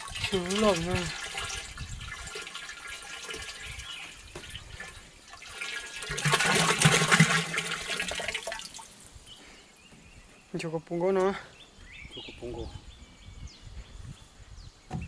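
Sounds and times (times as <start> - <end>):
liquid pouring into plastic drum: 0.0 - 8.9.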